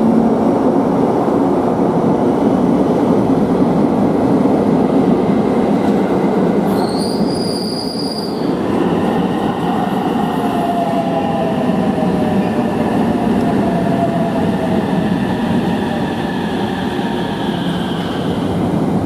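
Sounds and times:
high squeal: 0:06.7 - 0:08.6.

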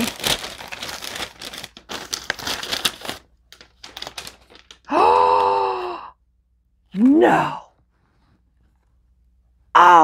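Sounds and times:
paper crinkling and tearing: 0:00.0 - 0:04.9.

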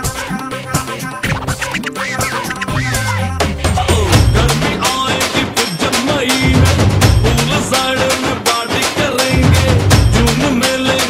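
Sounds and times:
dj scratch effect: 0:00.0 - 0:05.1
dance music over speakers: 0:00.0 - 0:11.0
heavy bass line: 0:01.5 - 0:05.3, 0:06.4 - 0:07.9, 0:09.3 - 0:10.6.

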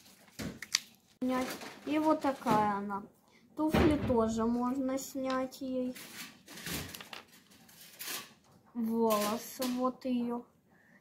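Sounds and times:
plastic doll rustling: 0:00.0 - 0:02.9, 0:04.6 - 0:09.7.

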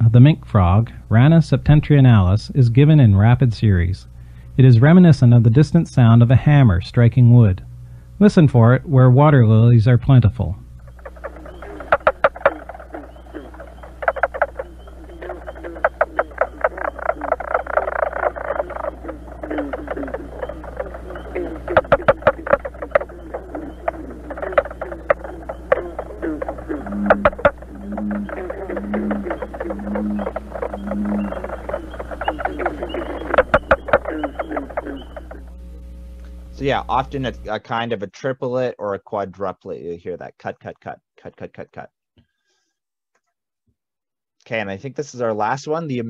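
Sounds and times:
frogs calling with knocking notes: 0:04.1 - 0:37.4
low repeated note: 0:10.4 - 0:37.6.

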